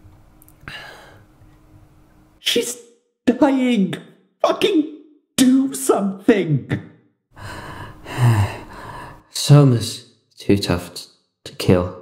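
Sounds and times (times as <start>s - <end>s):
person gasping for breath: 0.7s - 1.2s, 7.4s - 9.2s.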